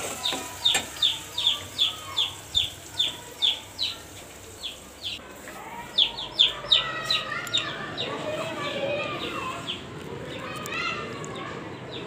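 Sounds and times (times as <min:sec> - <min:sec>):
bird chirping: 0:00.1 - 0:05.2, 0:05.9 - 0:10.6.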